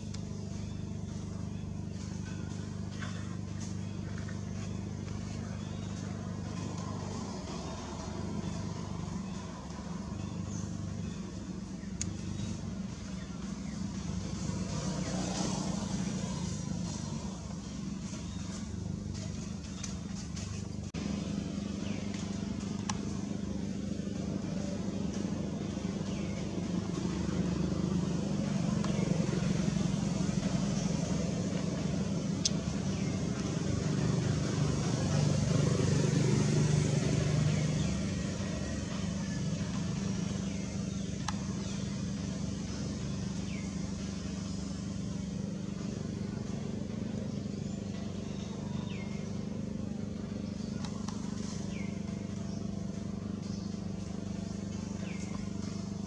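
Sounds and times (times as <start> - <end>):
low engine hum: 0.0 - 56.0.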